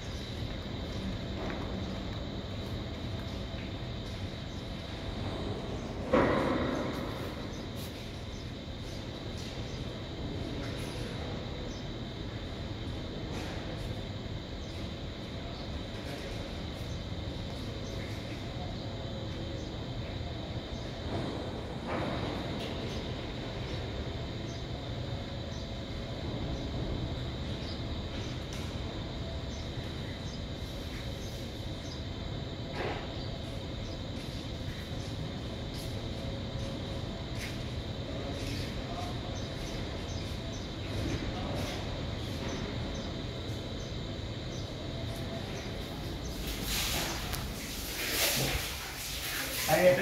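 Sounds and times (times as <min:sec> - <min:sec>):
mechanical rumble and hum: 0:00.0 - 0:49.4.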